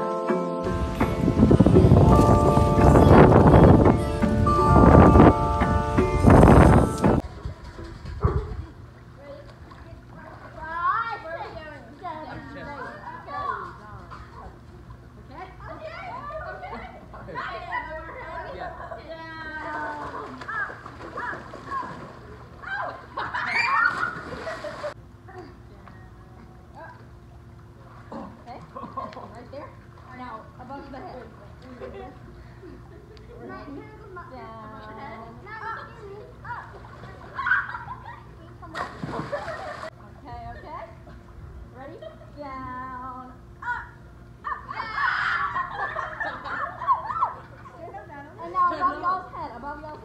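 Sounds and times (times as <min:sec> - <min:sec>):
splashing in a swimming pool: 0:19.5 - 0:25.0, 0:36.2 - 0:40.1
girls shouting and shrieking: 0:20.4 - 0:24.4, 0:43.6 - 0:45.8, 0:46.8 - 0:47.5.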